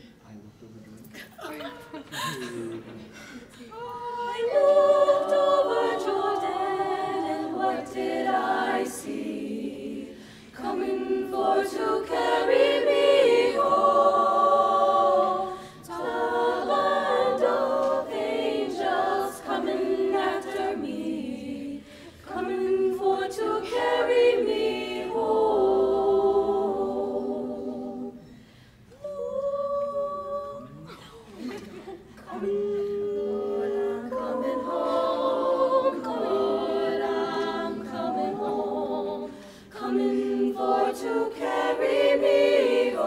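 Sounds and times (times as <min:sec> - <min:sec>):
women singing a cappella harmony: 0:03.5 - 0:43.0.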